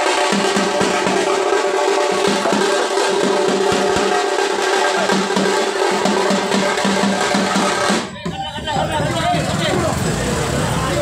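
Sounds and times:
drums playing fast rhythm: 0.0s - 11.0s.

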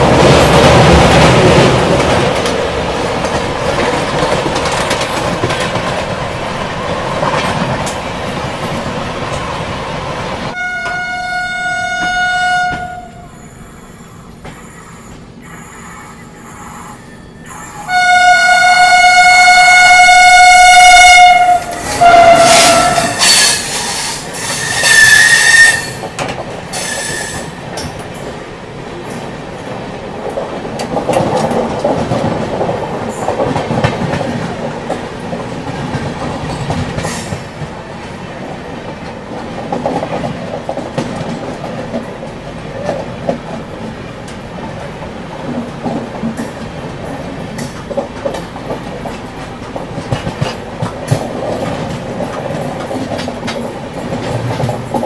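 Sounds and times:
train horn blasts: 10.5s - 13.4s, 17.8s - 23.6s, 24.5s - 26.1s
wheels clattering over rail joints: 44.3s - 55.0s.

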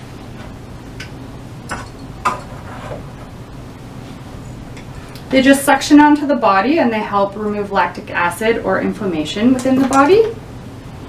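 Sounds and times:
cups clicking and knocking: 1.7s - 3.0s.

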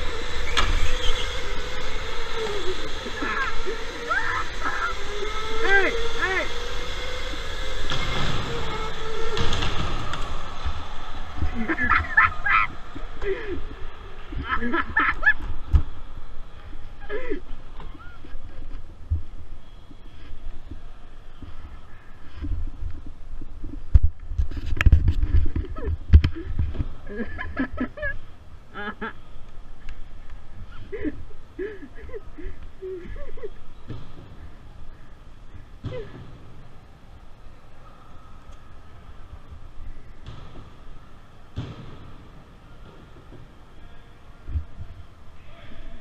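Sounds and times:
karts bumping thump: 0.0s - 13.3s, 33.8s - 34.6s, 35.8s - 36.7s, 40.2s - 40.9s, 41.5s - 43.6s
electric go-kart motor whine: 0.0s - 16.0s.

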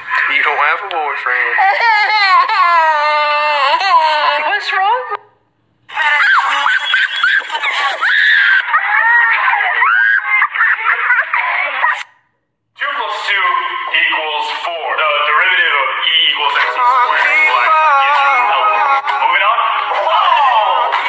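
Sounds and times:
voices shouting and screaming: 5.9s - 12.2s
person singing: 16.1s - 21.0s.

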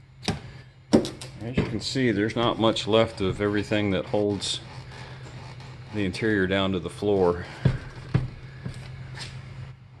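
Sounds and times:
steady low hum: 0.0s - 10.0s
handling knocks: 0.3s - 3.5s, 7.4s - 8.8s.

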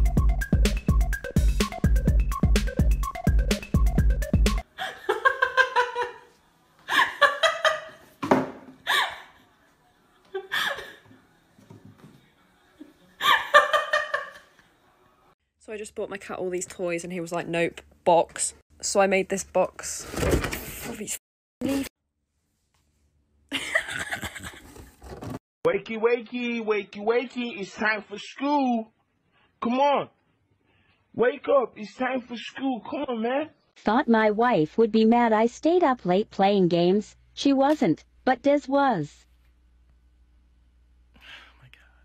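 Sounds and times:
faint breathy sound: 41.2s - 42.0s.

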